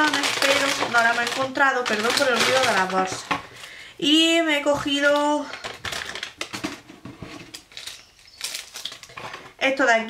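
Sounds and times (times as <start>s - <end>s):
shopping bag rustling and crinkling: 0.0s - 3.3s, 4.7s - 9.5s.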